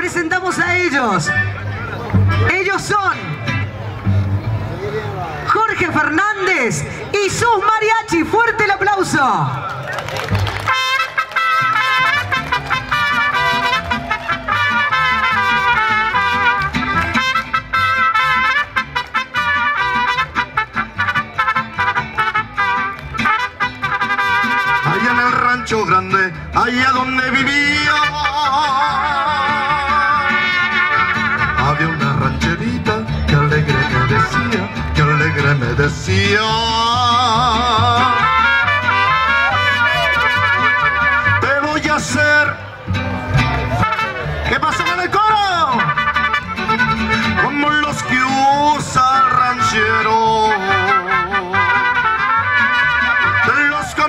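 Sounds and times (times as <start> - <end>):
strummed guitars: 0.0 - 6.2, 10.3 - 54.0
accordion: 10.2 - 54.0
trumpets playing melody: 10.6 - 32.4, 33.4 - 36.5, 37.1 - 42.2, 43.7 - 54.0.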